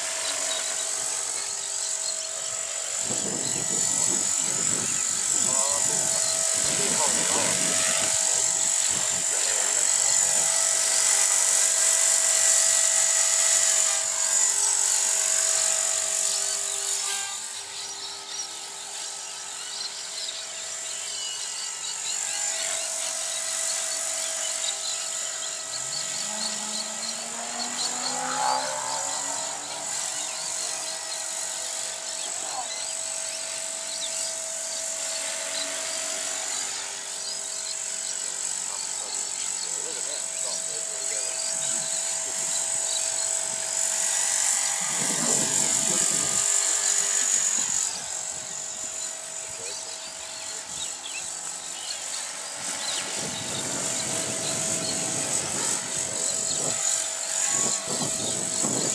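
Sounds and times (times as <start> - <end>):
rc helicopter rotor whine: 0.0 - 58.9.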